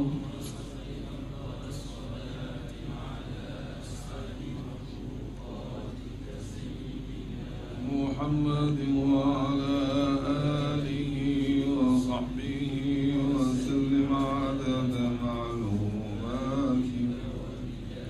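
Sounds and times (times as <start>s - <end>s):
man chanting a prayer: 0.0s - 18.0s.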